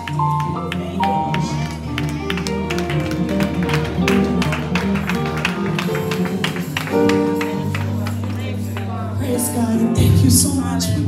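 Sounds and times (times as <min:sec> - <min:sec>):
live gospel band playing: 0:00.0 - 0:11.0.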